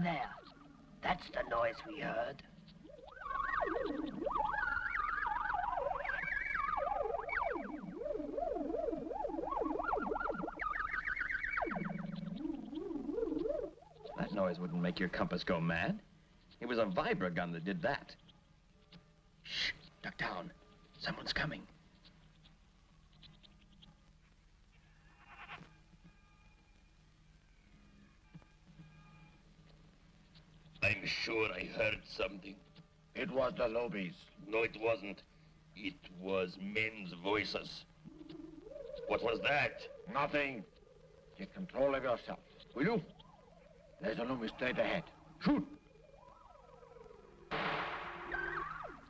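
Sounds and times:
wavering creature-like call: 0:00.0 - 0:14.8, 0:37.5 - 0:47.5
faint high chirps: 0:00.0 - 0:15.7, 0:36.8 - 0:49.0
warbling electronic tone: 0:01.4 - 0:14.9, 0:38.0 - 0:49.0.

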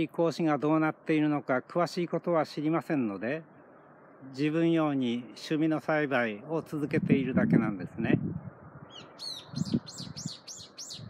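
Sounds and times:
songbird singing: 0:00.0 - 0:06.7, 0:08.2 - 0:11.0.

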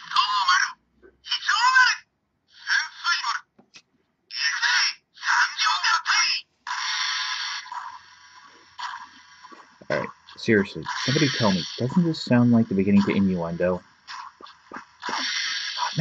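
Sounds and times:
tinny toy voice phrases: 0:04.3 - 0:06.5
toy electronic sound effect: 0:04.3 - 0:16.0.

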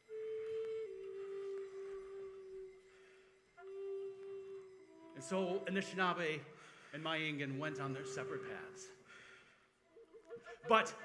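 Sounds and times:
wooden flute long low note: 0:00.0 - 0:09.0.

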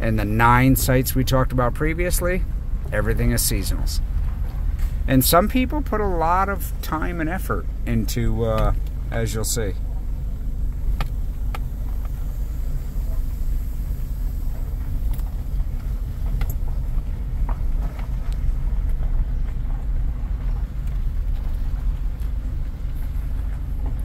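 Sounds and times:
truck engine and tyres rumbling: 0:00.0 - 0:24.0.

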